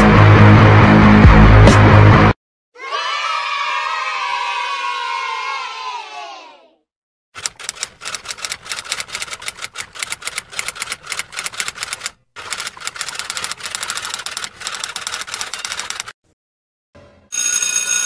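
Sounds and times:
group of voices cheering: 2.8s - 6.8s
rapid typewriter typing: 7.4s - 16.2s.

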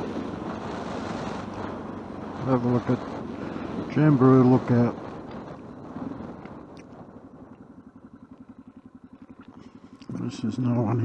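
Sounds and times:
motorcycle engine slowing: 0.0s - 11.0s.

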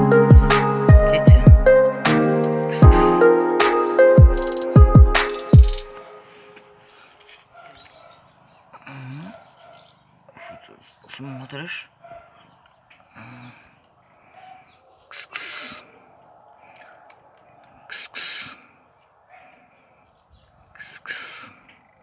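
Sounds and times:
birds chirping faintly: 4.8s - 22.0s.

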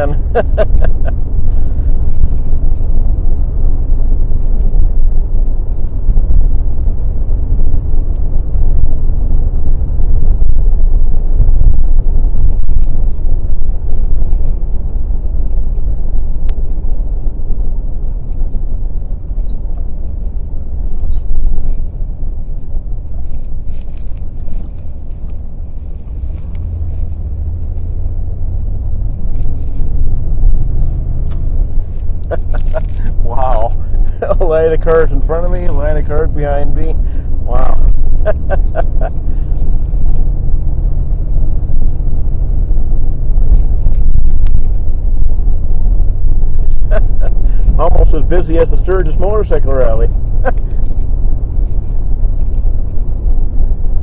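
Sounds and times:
car engine rumble: 0.0s - 54.0s
tyres on the road: 0.0s - 54.0s.

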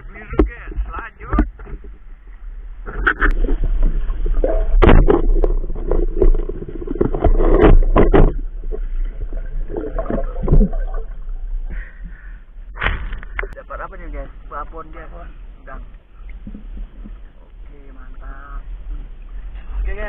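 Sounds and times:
water churning and gurgling: 0.0s - 20.0s
knocks and splashes in water: 2.8s - 11.7s, 12.7s - 13.6s.

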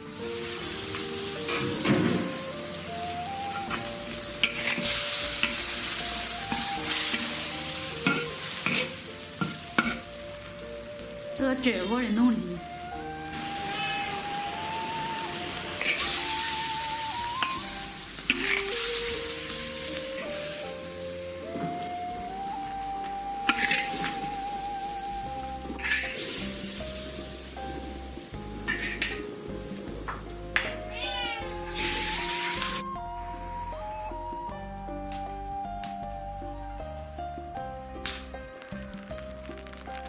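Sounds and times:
food sizzling in a wok: 0.0s - 33.0s
background music: 0.0s - 40.0s
metal ladle scraping a wok: 4.4s - 10.1s, 15.8s - 16.8s, 17.4s - 19.0s, 23.5s - 24.2s, 25.8s - 26.3s, 28.7s - 29.2s
cat meowing: 13.3s - 15.3s, 30.6s - 34.1s.

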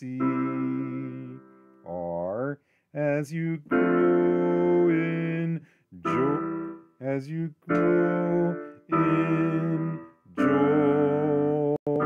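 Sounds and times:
electric keyboard chords: 0.0s - 2.2s, 3.6s - 12.0s.

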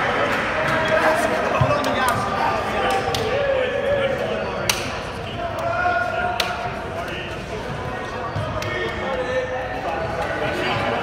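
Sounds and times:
indistinct voices and chatter: 0.0s - 11.0s.

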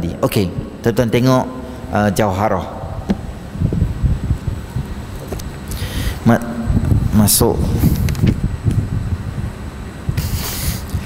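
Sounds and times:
low uneven rumble: 0.0s - 10.1s.

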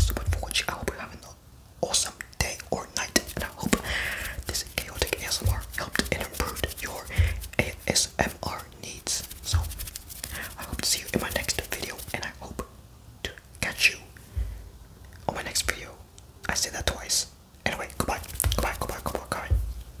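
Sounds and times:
whispering: 0.0s - 14.2s, 15.2s - 19.6s.

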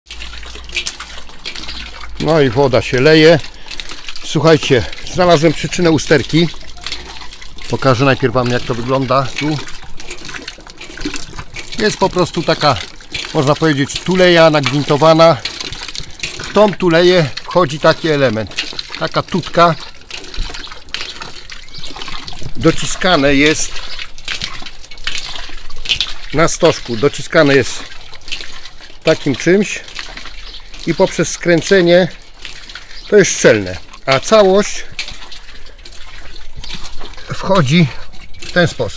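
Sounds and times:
water splashing onto roof: 0.0s - 38.9s.

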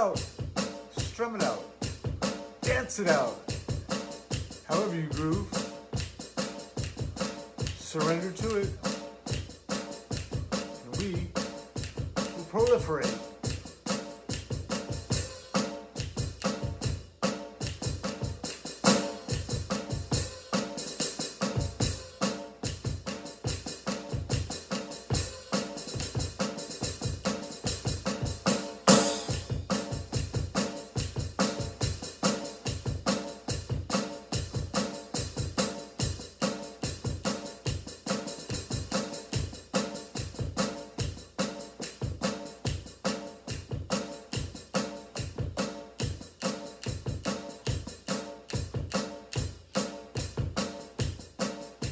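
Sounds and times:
drum kit groove: 0.0s - 51.9s.

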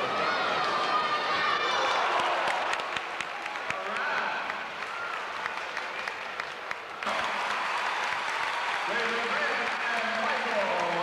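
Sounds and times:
crowd applauding and cheering: 0.2s - 11.0s.

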